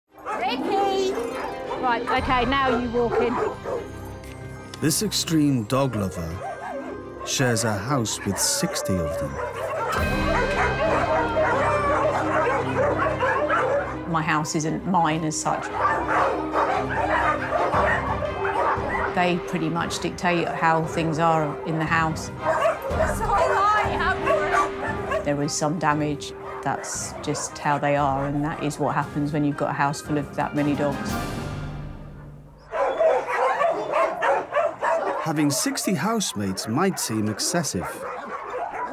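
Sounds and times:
background music low notes: 0.1 - 38.9
many dogs barking: 0.2 - 4.0, 5.8 - 30.9, 32.1 - 38.9.

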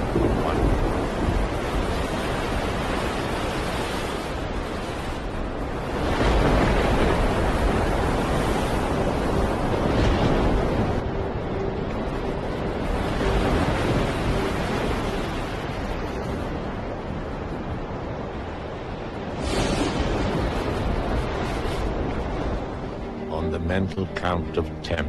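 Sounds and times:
rushing surf and wind noise: 0.0 - 25.0.

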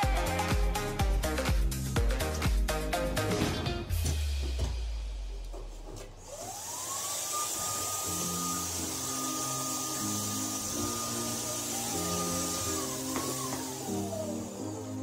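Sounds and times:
background music: 0.0 - 5.4, 7.9 - 15.0
electric tool motor whining: 6.2 - 15.0.

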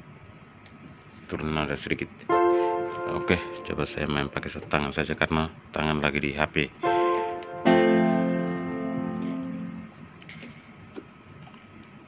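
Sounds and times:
keyboard playing chords: 2.3 - 4.5, 6.8 - 10.0.

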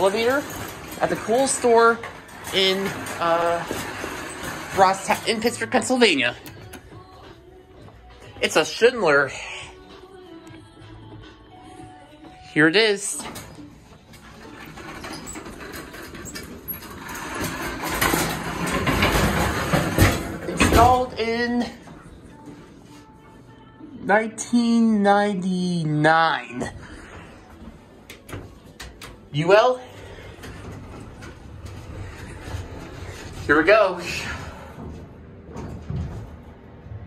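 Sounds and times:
shopping cart wheels on tile: 0.0 - 7.3, 12.5 - 23.3, 28.6 - 34.9.

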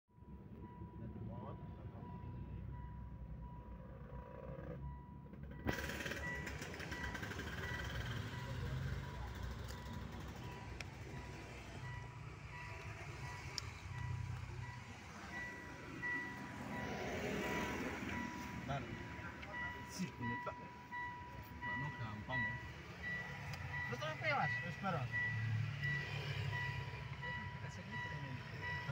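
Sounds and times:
higher electronic beeps: 4.8 - 28.9.

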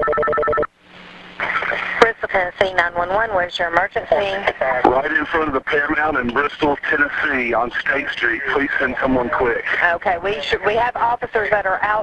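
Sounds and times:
telephone ring tone: 0.0 - 0.7
faint hum: 0.0 - 12.0.

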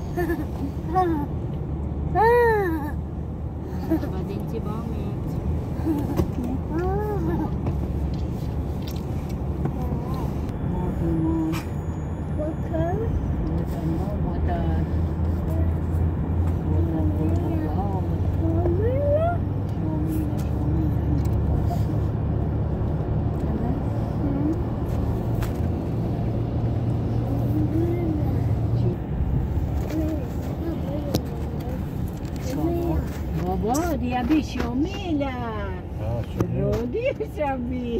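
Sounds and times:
car road and engine rumble: 0.0 - 37.9.

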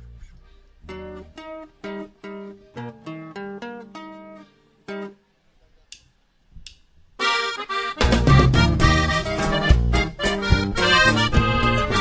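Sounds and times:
accordion melody: 7.2 - 12.0
steady bass: 8.0 - 12.0.

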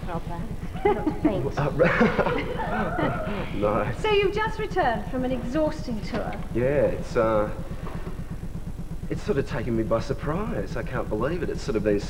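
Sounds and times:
man laughing: 0.7 - 3.9.

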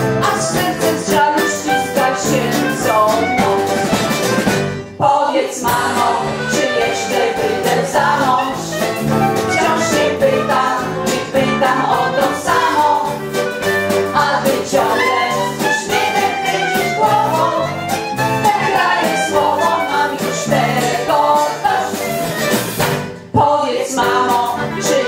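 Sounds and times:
choir singing: 0.0 - 4.0, 5.0 - 22.6, 23.3 - 25.0
instrumental accompaniment: 0.0 - 25.0.

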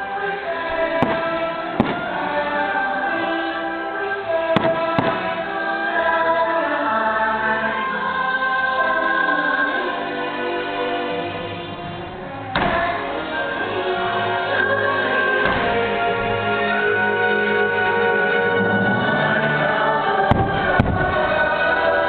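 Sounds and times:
orchestral music with choir: 0.0 - 22.0
firework bursts cracking: 0.5 - 3.6, 4.4 - 5.8, 18.4 - 22.0.

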